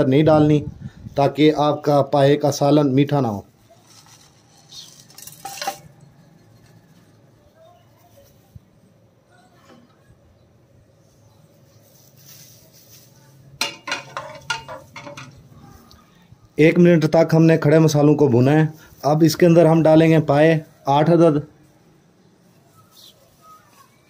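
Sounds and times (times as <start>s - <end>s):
ladle clinking and scraping pot: 3.7s - 7.1s, 13.6s - 15.5s
spices clattering into metal pot: 3.8s - 6.8s, 13.6s - 15.5s.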